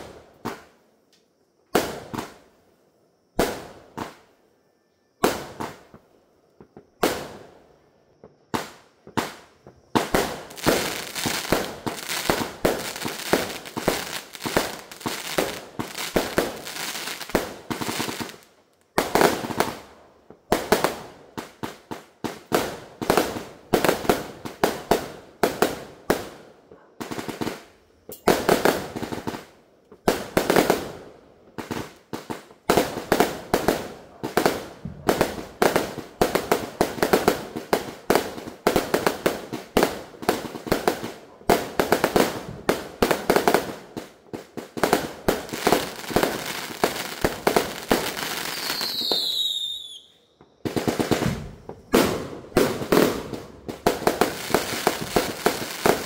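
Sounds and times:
firework bangs: 8.6 - 18.4, 50.7 - 56.0.

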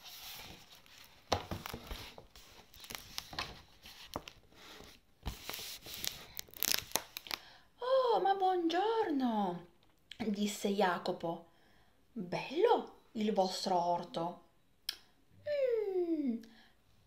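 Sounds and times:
paper rustling and crinkling: 0.0 - 7.4.

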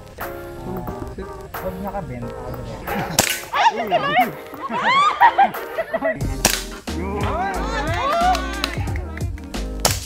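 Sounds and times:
background music: 0.0 - 10.0
airsoft pistol shot: 3.1 - 3.5, 6.4 - 6.8.

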